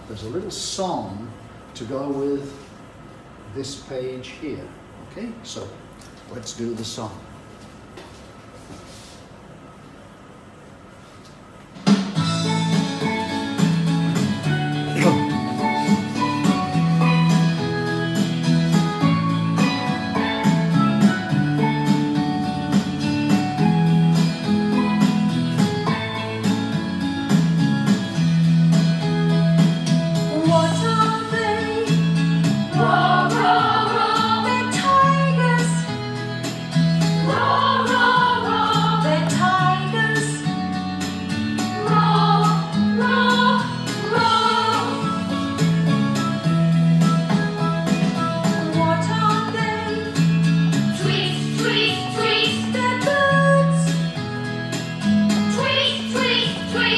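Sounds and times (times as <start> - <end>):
children's song with bass line: 12.1 - 56.9
voices singing: 32.7 - 35.7, 37.2 - 40.4, 41.8 - 45.2, 51.0 - 53.8, 55.5 - 56.9.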